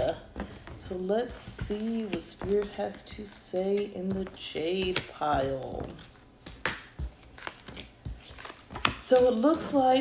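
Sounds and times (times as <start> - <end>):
cards clicking and rustling: 6.5 - 9.7.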